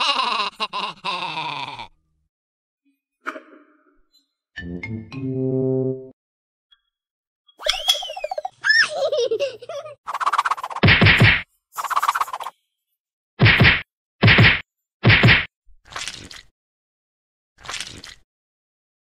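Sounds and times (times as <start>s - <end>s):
sliding whistle tones: 7.6s - 8.4s.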